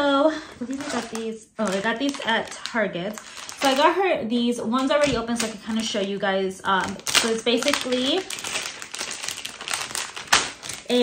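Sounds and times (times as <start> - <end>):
crinkly packaging crackling: 0.4 - 11.0.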